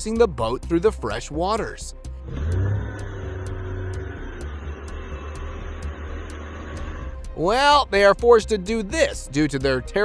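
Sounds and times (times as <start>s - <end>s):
motorboat engine humming: 2.0s - 7.8s.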